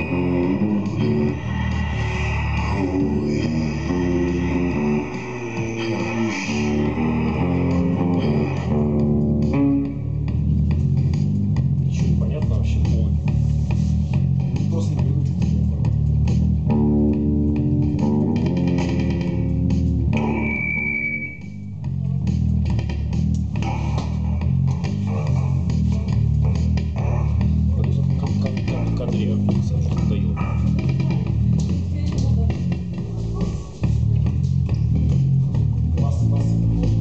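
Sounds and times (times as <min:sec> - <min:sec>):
held droning tone: 0:00.0 - 0:11.9, 0:12.7 - 0:37.0
bass guitar riff: 0:00.0 - 0:37.0
high whine: 0:00.0 - 0:37.0.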